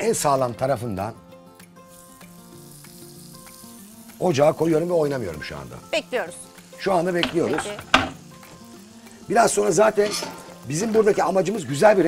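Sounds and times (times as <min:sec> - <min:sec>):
chicken sizzling in frying pan: 0:00.0 - 0:12.0
soft background music: 0:00.0 - 0:12.0.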